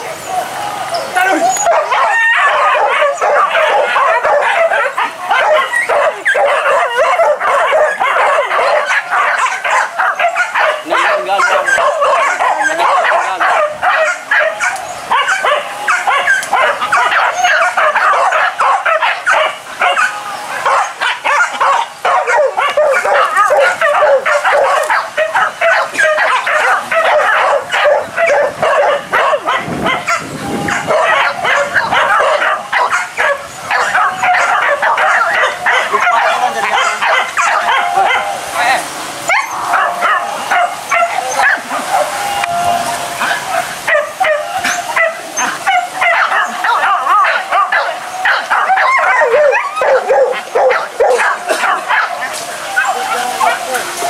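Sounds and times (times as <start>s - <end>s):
hunting dogs yelping and barking: 0.7s - 54.0s.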